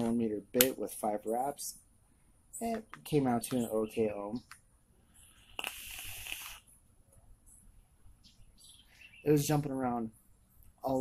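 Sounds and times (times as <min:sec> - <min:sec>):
vape hiss of air and vapor: 0:05.2 - 0:06.8.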